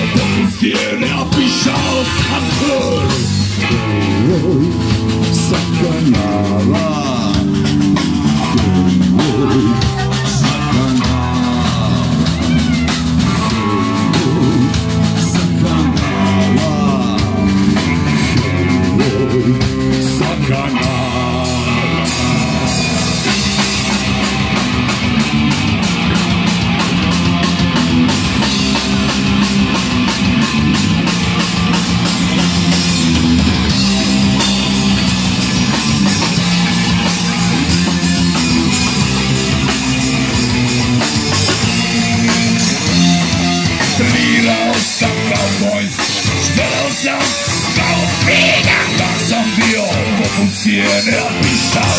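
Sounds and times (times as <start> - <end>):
fast drum beat: 0.0 - 51.9
live rock band playing: 0.0 - 51.9.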